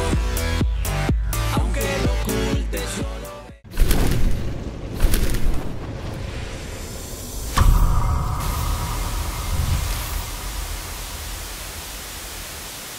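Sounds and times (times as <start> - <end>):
sudden low hit: 7.2 - 12.4
static-like hiss: 8.5 - 12.9.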